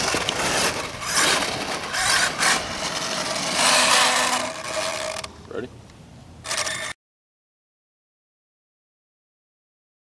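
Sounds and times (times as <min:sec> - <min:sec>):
toy truck motor whine: 0:00.0 - 0:05.3, 0:06.4 - 0:07.0.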